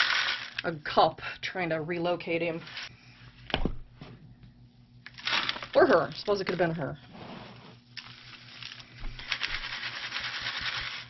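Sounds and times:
gritty rustling through sieve: 7.1s - 11.0s.

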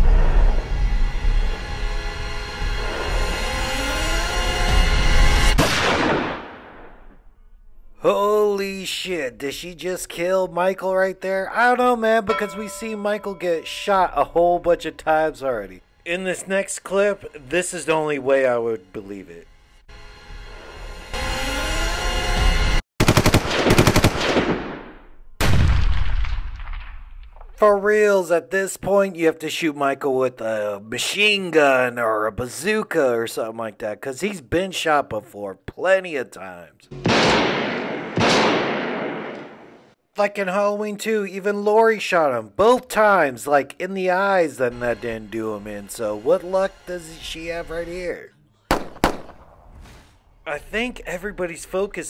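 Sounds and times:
tense horror score: 0.0s - 5.6s, 44.6s - 48.1s
loud gunshot: 5.5s - 7.1s, 23.0s - 27.1s, 37.0s - 39.9s, 48.7s - 49.8s
loud ringing hit: 12.3s - 14.2s.

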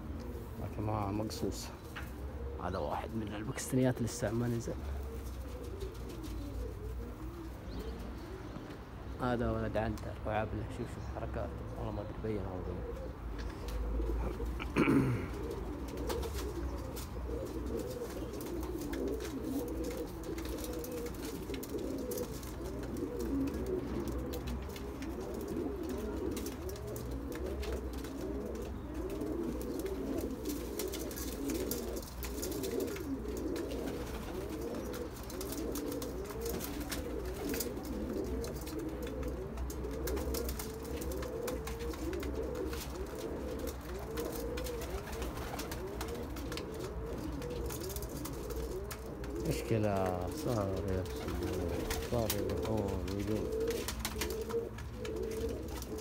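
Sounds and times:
pigeons cooing: 0.0s - 56.0s.

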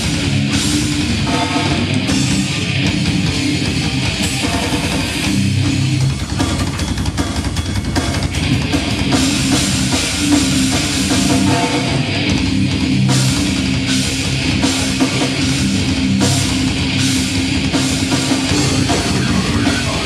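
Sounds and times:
heavy metal band playing: 0.0s - 20.0s
rapid drum strokes: 0.0s - 20.0s.

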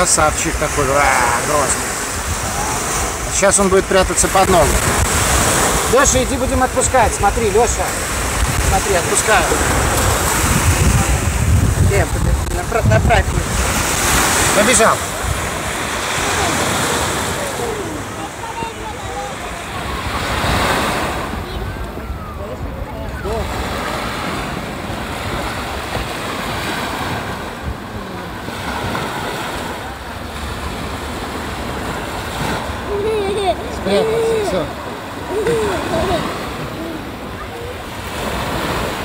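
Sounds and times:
sea surf on a beach: 0.0s - 39.0s
wind on microphone: 1.8s - 39.0s.

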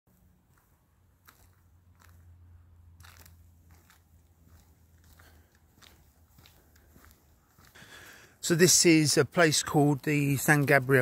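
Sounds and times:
soft crunches: 0.1s - 8.2s.

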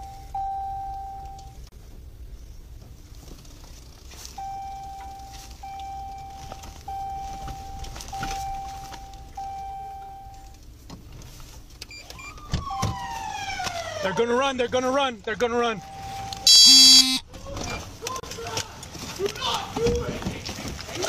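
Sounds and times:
car engine and road rumble: 0.0s - 21.0s
police siren: 12.0s - 14.2s, 15.8s - 17.2s
electronic beeps: 15.8s - 17.2s.

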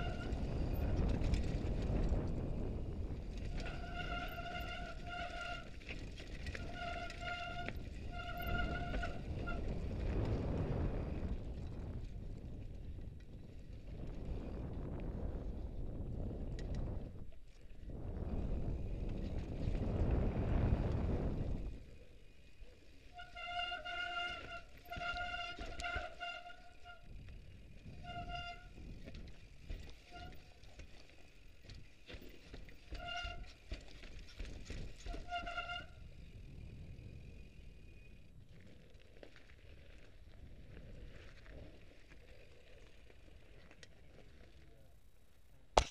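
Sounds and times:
short bike brake squeals: 0.0s - 0.7s, 3.6s - 5.8s, 6.5s - 9.8s, 22.9s - 30.7s, 32.8s - 33.6s, 35.0s - 36.2s
rushing wind: 0.0s - 32.0s, 32.6s - 39.0s
bike tyre and rattle noise: 0.0s - 45.9s.

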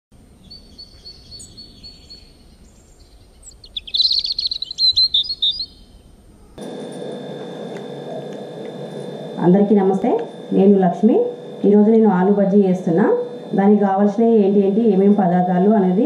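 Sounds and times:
songbirds chirping: 0.2s - 6.6s
steady room hum: 0.2s - 16.0s.

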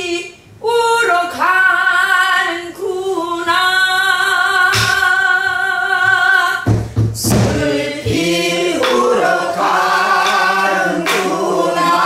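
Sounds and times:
woman singing folk song: 0.0s - 7.4s
barrel drum struck with stick: 4.7s - 5.1s, 6.7s - 11.4s.

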